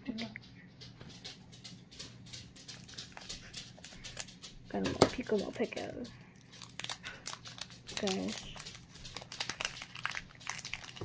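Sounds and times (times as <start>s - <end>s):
foil wrapper crinkling: 1.7s - 11.0s.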